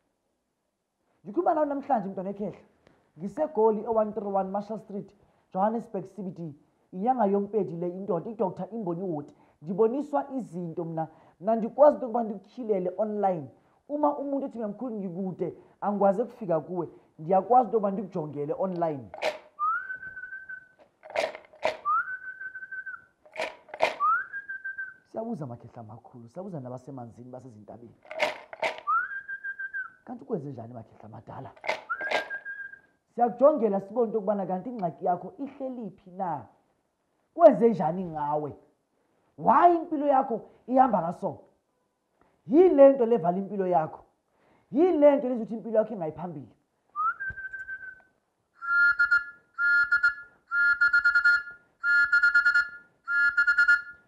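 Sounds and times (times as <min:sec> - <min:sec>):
man whistling: 0:19.5 - 0:20.8, 0:21.6 - 0:23.2, 0:23.8 - 0:25.1, 0:28.8 - 0:30.0, 0:31.7 - 0:33.0, 0:47.0 - 0:54.0.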